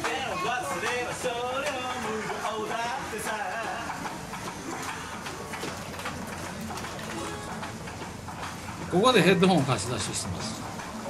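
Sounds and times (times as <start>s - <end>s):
hubbub of street noise: 0.0s - 11.0s.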